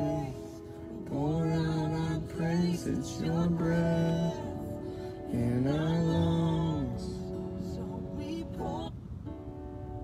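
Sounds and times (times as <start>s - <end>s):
low voice singing: 0.0s - 9.0s.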